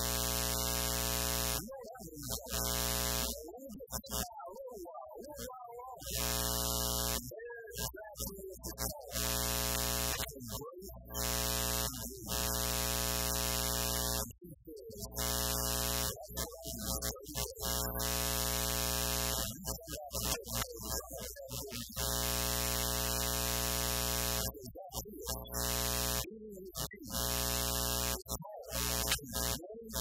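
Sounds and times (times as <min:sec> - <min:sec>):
loud electrical buzz: 0:00.0 - 0:01.6, 0:02.3 - 0:03.4, 0:06.1 - 0:07.2, 0:09.1 - 0:10.3, 0:11.1 - 0:14.4, 0:15.0 - 0:24.6, 0:25.2 - 0:30.0.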